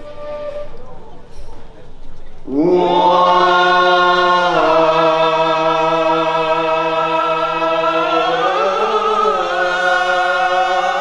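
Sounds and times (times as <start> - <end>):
group of voices chanting: 2.5 - 11.0.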